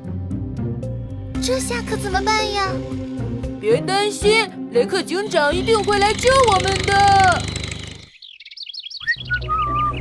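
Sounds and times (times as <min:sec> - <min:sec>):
cartoon birds chirping: 0:08.0 - 0:10.0.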